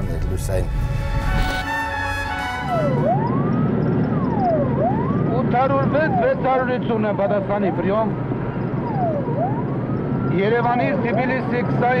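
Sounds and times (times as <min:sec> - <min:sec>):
traffic rumble: 0:00.0 - 0:12.0
police siren wailing: 0:00.6 - 0:12.0.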